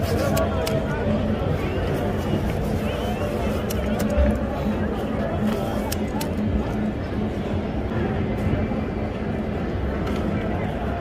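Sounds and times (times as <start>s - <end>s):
city street rumble: 0.0s - 11.0s.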